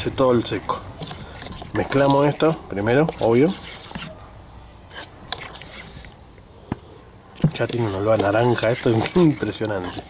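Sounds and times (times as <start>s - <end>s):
spoon scraping in metal bowl: 0.0s - 4.2s, 4.9s - 6.4s, 7.4s - 10.0s.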